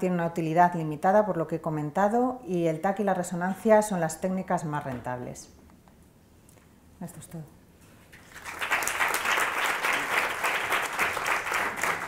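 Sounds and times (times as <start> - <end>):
crowd clapping: 8.2 - 12.0.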